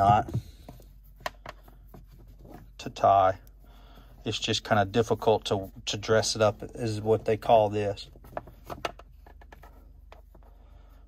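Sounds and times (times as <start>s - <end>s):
soft rope handling noise: 0.0s - 11.0s.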